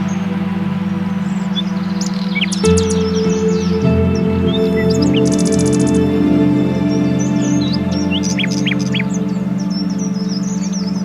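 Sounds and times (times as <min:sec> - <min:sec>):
birds chirping: 0:00.0 - 0:11.0
pulsing low drone: 0:00.0 - 0:11.0.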